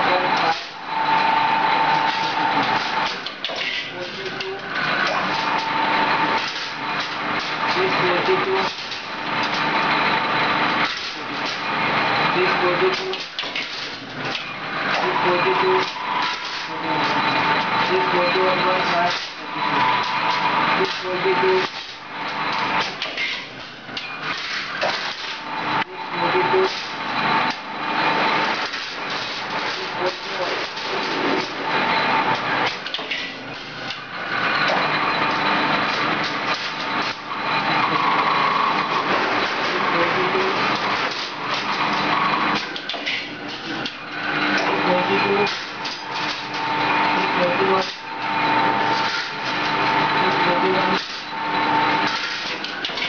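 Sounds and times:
dense machine noise: 0.0s - 53.0s
steady machine whine: 0.0s - 53.0s.

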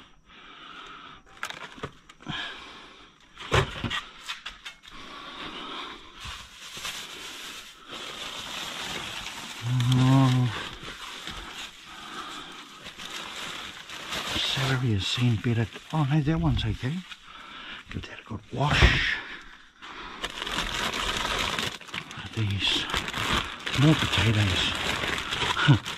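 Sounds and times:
plastic bags rustling: 1.3s - 2.3s, 5.4s - 25.9s.

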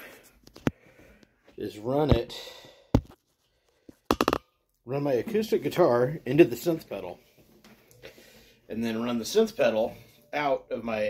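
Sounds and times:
handling clicks and knocks: 4.1s - 4.4s.

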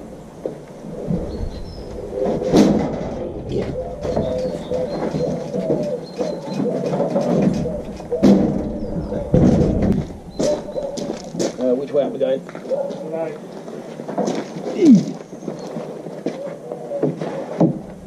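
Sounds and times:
birds calling: 0.0s - 18.0s
wooden slab knocking and scraping: 2.2s - 11.6s.

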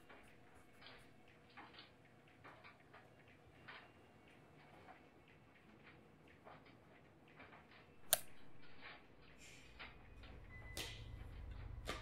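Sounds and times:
sharp click: 8.0s - 9.0s.

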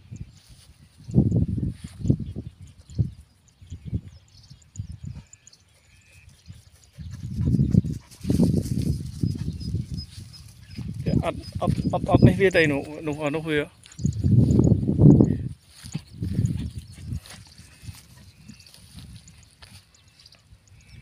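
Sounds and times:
footsteps on dry grass: 0.2s - 3.1s, 5.3s - 21.0s.

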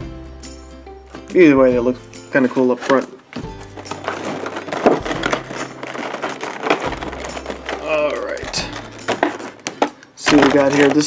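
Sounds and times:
plastic packaging crinkling: 2.6s - 11.0s.

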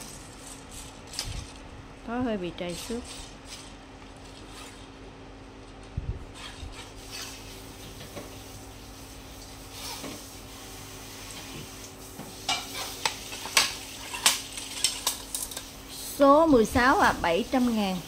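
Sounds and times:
steady low hum: 0.0s - 18.0s.

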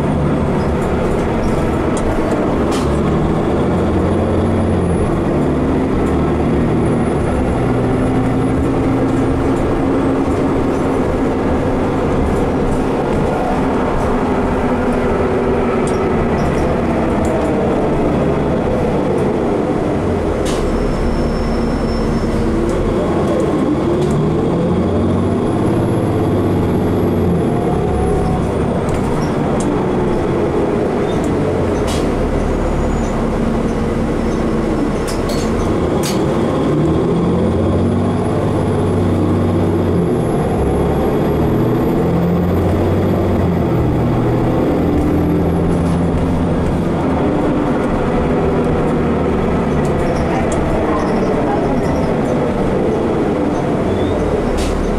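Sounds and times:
bus engine and road noise: 0.0s - 54.9s
drivetrain whine: 0.0s - 54.9s.

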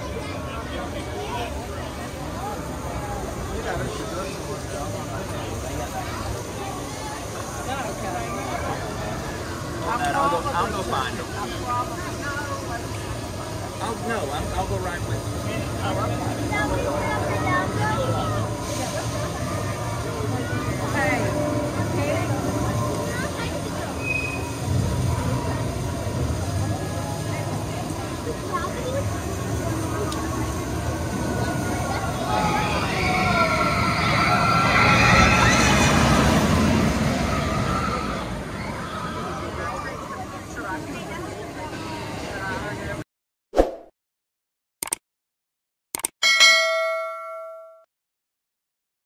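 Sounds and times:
faint crowd chatter: 0.0s - 43.0s
roller coaster train rumble: 0.0s - 43.0s
notification bell ding: 46.2s - 47.9s.

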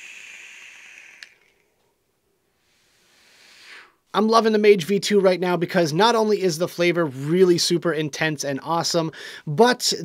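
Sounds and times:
quiet airy hiss of vaping: 0.0s - 4.2s
small click: 1.2s - 1.6s.

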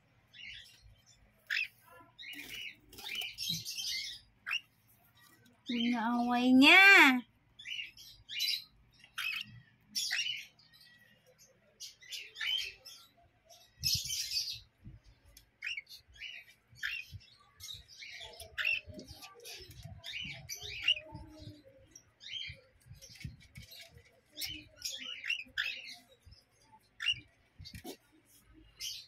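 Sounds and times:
bird chicks chirping: 0.0s - 29.0s
soft low bird chatter: 0.0s - 29.0s.

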